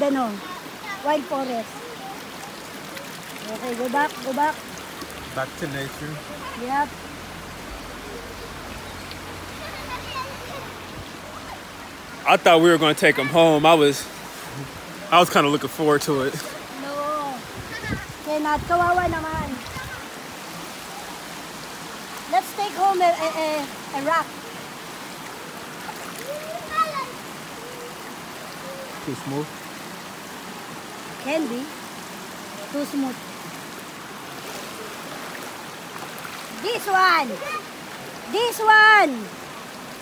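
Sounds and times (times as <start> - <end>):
river water flowing over rocks: 0.0 - 40.0.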